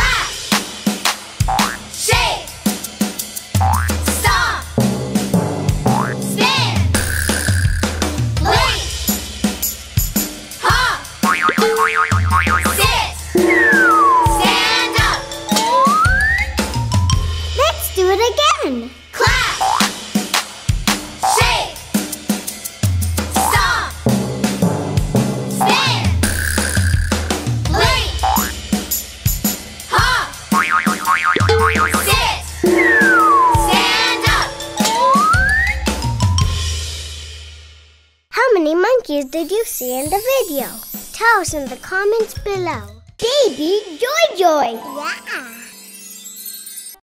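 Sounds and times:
children's song music: 0.0 - 37.5, 38.3 - 47.0
cartoon boing sound effect: 5.9 - 6.2, 11.2 - 12.8, 28.2 - 28.5, 30.5 - 35.7
falling whistle: 13.4 - 14.8, 32.8 - 34.4, 35.1 - 35.8.

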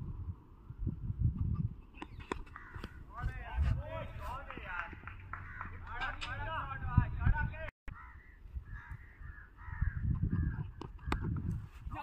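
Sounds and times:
wind rumbling on microphone: 0.0 - 12.0
crows cawing: 2.5 - 3.1, 5.3 - 6.0, 7.9 - 11.3.

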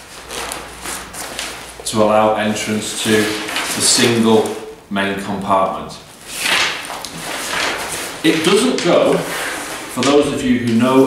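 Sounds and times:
fabric rustling: 0.0 - 1.9, 2.6 - 4.7, 6.2 - 11.0.

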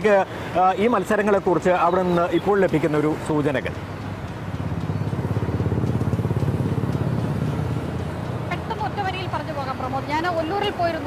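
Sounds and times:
vehicle engine running: 3.8 - 11.0.

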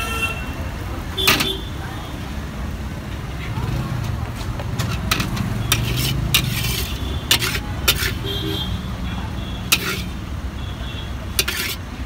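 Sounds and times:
street traffic rumble: 0.0 - 12.0
metal spatula scraping a wok: 4.8 - 8.7, 9.6 - 10.2, 11.3 - 12.0.

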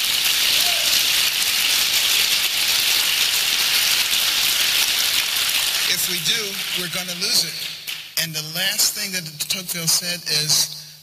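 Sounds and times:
audience applauding: 0.0 - 8.2
person speaking: 5.9 - 10.9.

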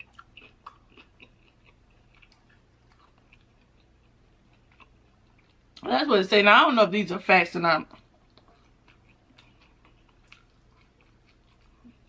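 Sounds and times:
chewing fried chicken: 0.0 - 5.9, 7.8 - 12.0.

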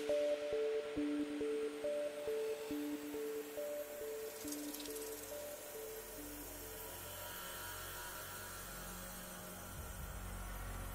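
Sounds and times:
background music: 0.0 - 10.9
faint hiss: 0.0 - 10.9.

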